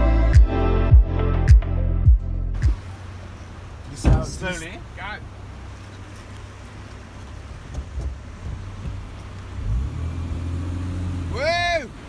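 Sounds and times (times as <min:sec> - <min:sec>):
truck engine running: 0:01.2 - 0:12.0
vehicle knocks: 0:03.9 - 0:04.9, 0:06.8 - 0:09.6.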